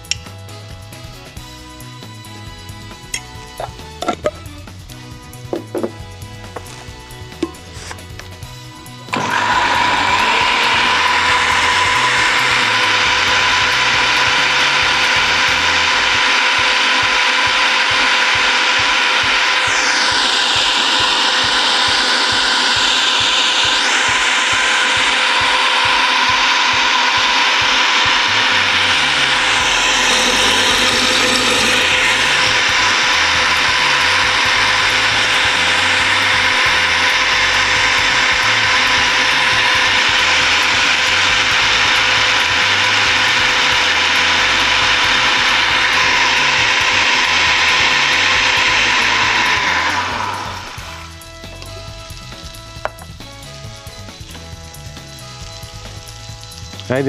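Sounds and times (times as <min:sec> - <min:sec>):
blender running at high speed: 0:00.0 - 0:57.0.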